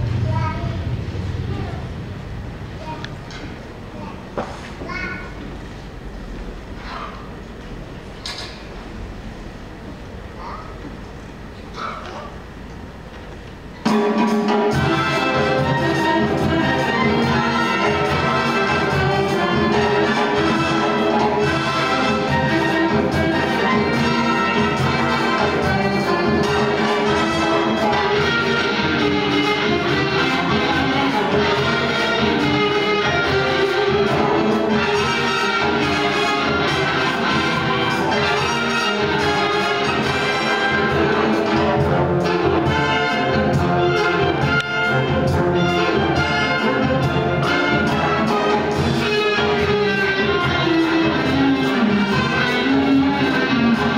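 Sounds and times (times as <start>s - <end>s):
orchestral music with brass: 13.8s - 53.9s.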